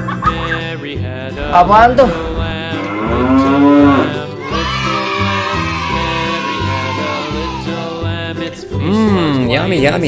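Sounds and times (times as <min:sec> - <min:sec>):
nursery rhyme music: 0:00.0 - 0:10.0
moo-like call: 0:02.7 - 0:04.2.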